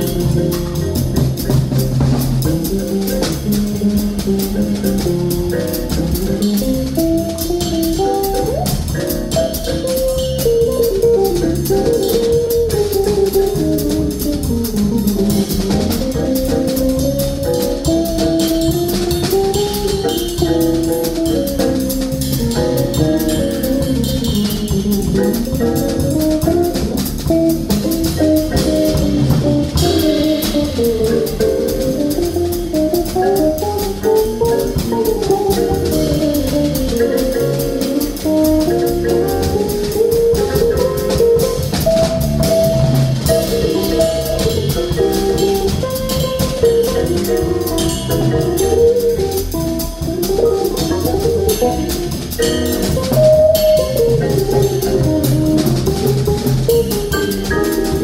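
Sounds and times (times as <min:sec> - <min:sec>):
drum kit with cymbals: 0:00.0 - 0:58.0
keyboard accompaniment: 0:00.0 - 0:58.0
guitar solo: 0:04.6 - 0:14.1, 0:26.4 - 0:58.0.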